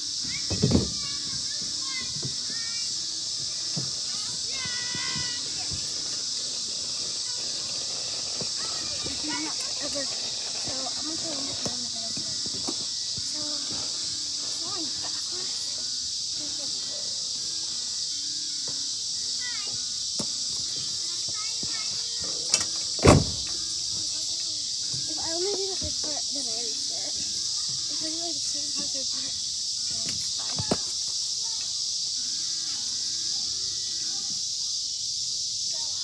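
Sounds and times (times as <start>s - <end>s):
high-pitched insect drone: 0.0s - 36.0s
loud thump on playground structure: 0.2s - 1.2s, 23.0s - 23.6s, 30.0s - 31.0s.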